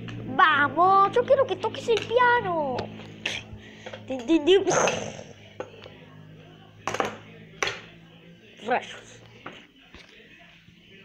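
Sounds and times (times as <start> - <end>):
child warbling vocal sound: 4.4 - 5.4.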